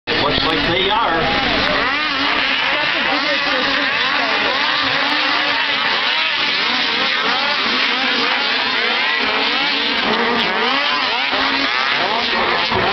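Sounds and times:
snowmobile engines revving: 0.1s - 12.9s.

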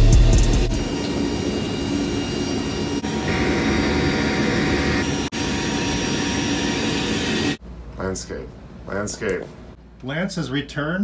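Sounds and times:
turboprop engines droning: 0.0s - 10.0s.

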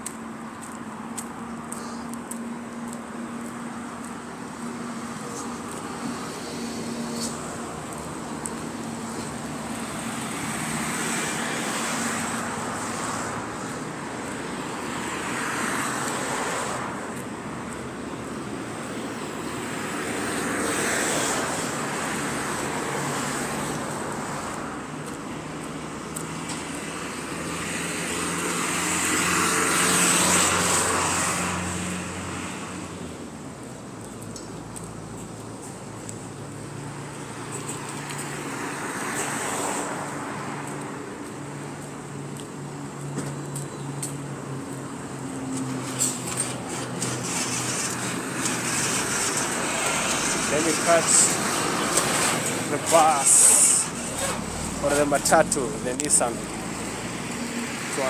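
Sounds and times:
highway traffic passing: 0.0s - 58.0s.

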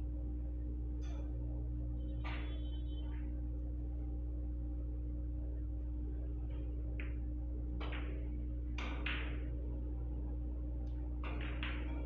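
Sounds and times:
steady low hum: 0.0s - 12.0s
billiard balls clicking: 6.5s - 9.7s, 10.8s - 12.0s
cue tip striking ball: 7.0s - 9.6s, 11.2s - 12.0s.

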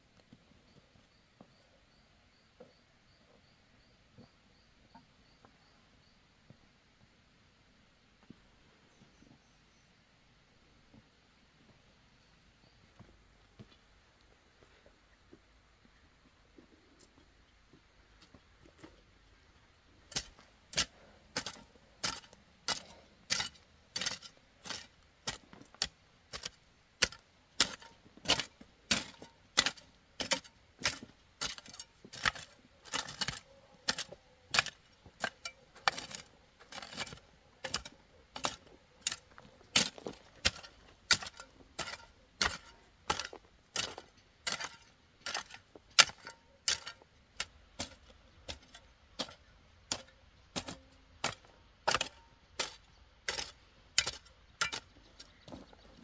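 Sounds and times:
hoe chopping into soil: 20.1s - 54.9s.

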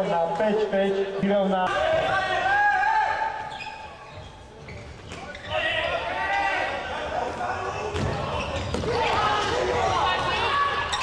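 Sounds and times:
voices echoing in hall: 0.0s - 11.0s.

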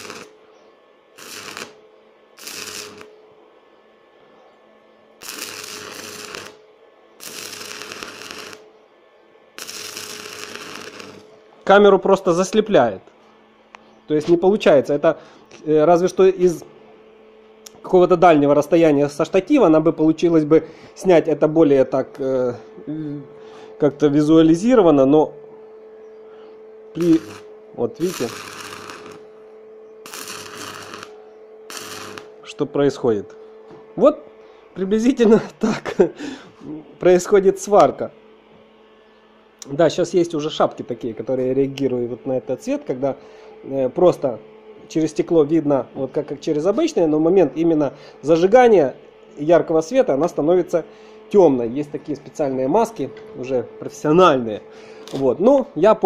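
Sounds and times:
welding arc crackling: 0.0s - 0.4s, 1.1s - 3.2s, 5.1s - 8.7s, 9.5s - 11.8s, 26.9s - 32.6s
low steady hum: 0.0s - 56.0s.

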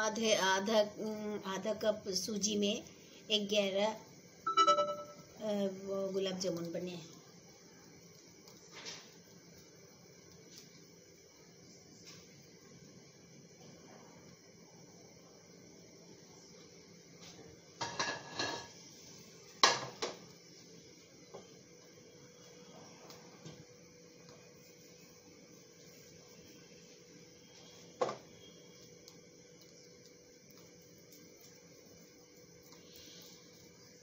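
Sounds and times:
plate clattering on glass stovetop: 17.8s - 18.7s.

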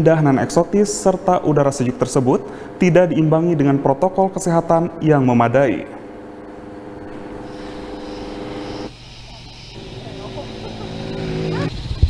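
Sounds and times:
vehicle engine running: 6.0s - 12.0s.

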